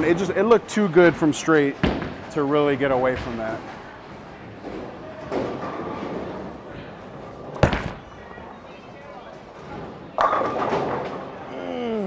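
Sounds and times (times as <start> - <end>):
bowling alley background noise: 0.0 - 12.0.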